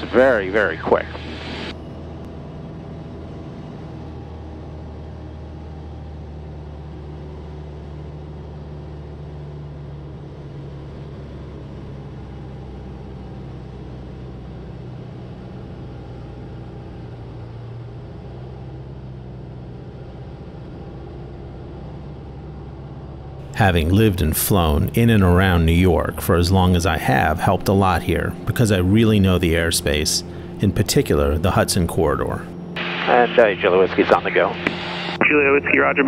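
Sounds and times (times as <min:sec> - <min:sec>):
propeller plane engine droning: 0:00.0 - 0:36.0.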